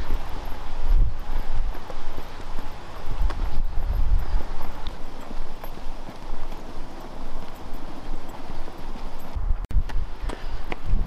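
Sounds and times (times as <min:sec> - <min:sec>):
running footsteps on asphalt: 0:00.0 - 0:11.0.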